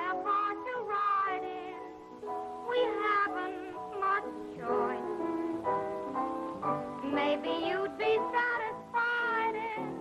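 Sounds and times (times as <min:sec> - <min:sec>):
woman singing: 0:00.0 - 0:02.0, 0:02.6 - 0:06.1, 0:06.9 - 0:10.0.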